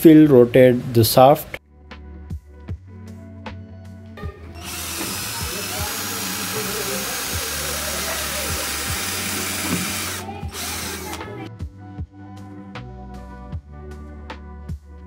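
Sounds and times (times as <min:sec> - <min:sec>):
background music: 0:00.0 - 0:15.0
cordless drill against plastic: 0:04.6 - 0:11.5.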